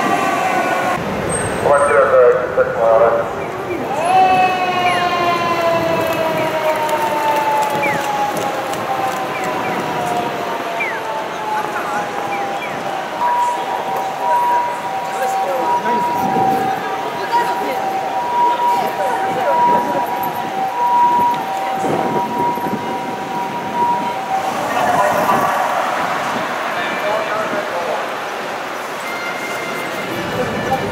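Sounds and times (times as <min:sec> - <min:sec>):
fire engine siren wailing: 0:00.0 - 0:30.9
street traffic: 0:00.0 - 0:30.9.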